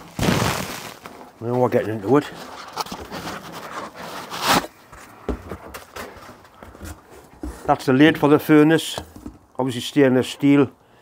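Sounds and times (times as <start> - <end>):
foam scraping rustle: 0.0 - 4.8.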